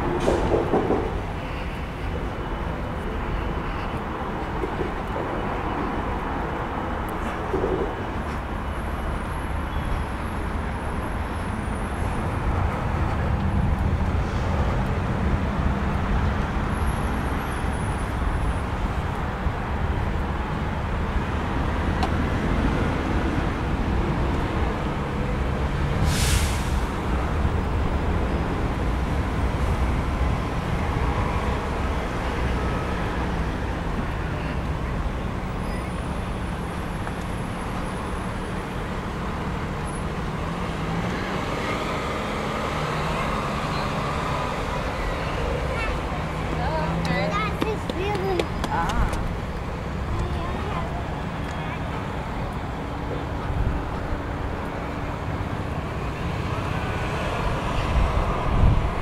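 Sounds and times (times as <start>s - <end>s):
road traffic rumble: 0.0s - 59.0s
loud hiss: 26.0s - 27.0s.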